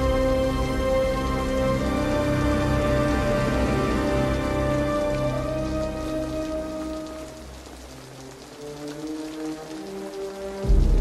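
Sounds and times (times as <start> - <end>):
film score with held notes: 0.0 - 11.0
steady rain: 0.0 - 11.0.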